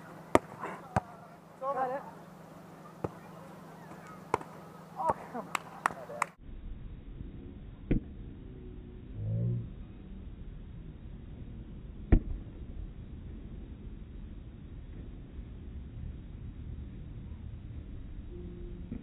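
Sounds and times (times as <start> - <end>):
hands slapping a volleyball: 4.3 - 6.3.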